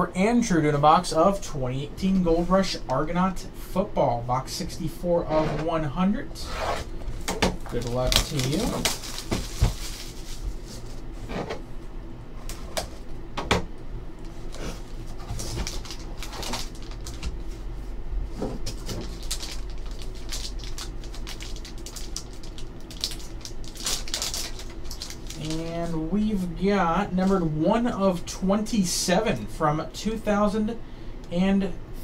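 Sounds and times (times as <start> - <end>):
foil wrapper crinkling: 7.6 - 11.0, 15.2 - 17.5, 18.6 - 26.0.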